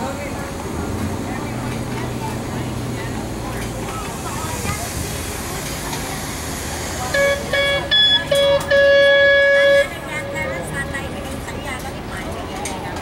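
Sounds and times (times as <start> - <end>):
horn toots and blast: 7.1 - 10.4.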